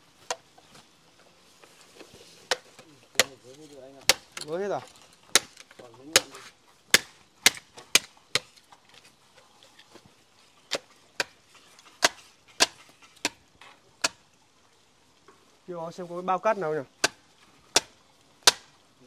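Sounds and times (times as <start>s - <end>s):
blade chopping wood: 2.4s - 3.4s, 4.0s - 8.6s, 10.7s - 11.4s, 12.0s - 13.4s, 14.0s - 14.2s, 17.0s - 18.8s.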